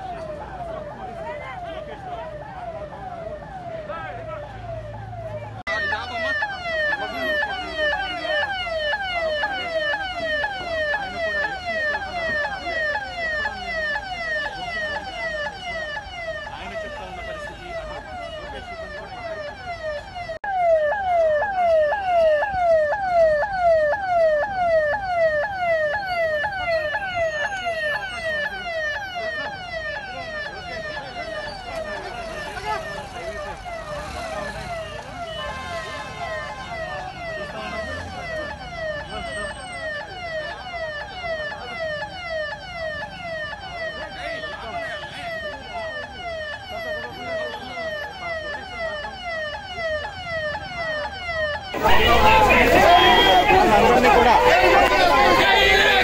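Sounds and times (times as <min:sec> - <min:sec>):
police siren wailing: 0:00.0 - 0:56.0.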